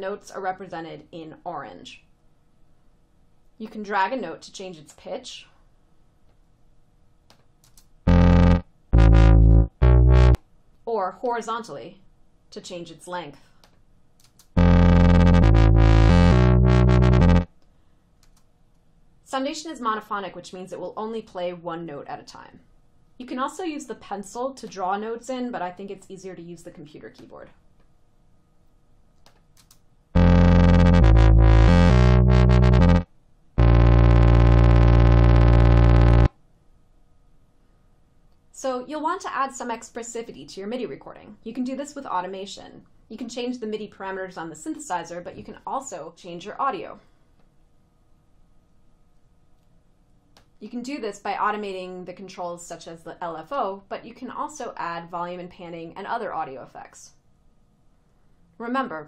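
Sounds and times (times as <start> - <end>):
synthesizer notes: 8.1 - 10.4, 14.6 - 17.5, 30.2 - 36.3.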